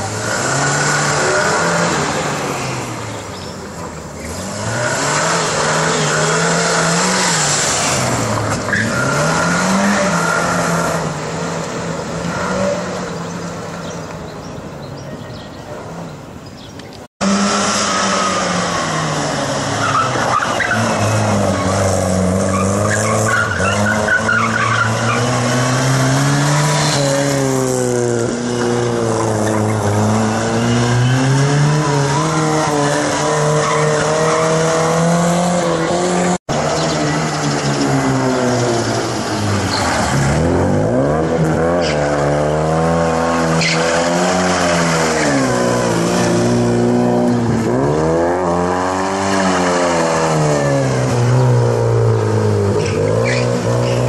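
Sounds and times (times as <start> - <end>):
car engine revving: 0.0 - 14.1, 17.2 - 54.0
tyre squeal: 19.8 - 25.4, 43.5 - 44.0, 52.8 - 54.0.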